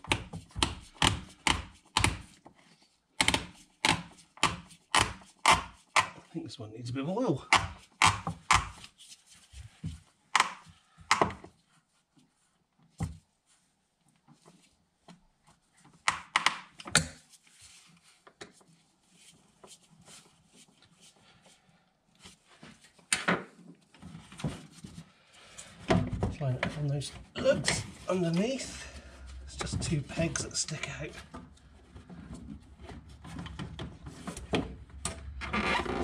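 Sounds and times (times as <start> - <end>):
plastic parts knocking and clicking: 0.0 - 2.4, 3.2 - 6.2, 9.9 - 11.5.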